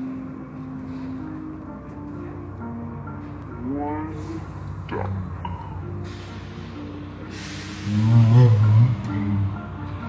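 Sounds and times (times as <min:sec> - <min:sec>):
car wash machinery rumbling: 0:00.0 - 0:10.0.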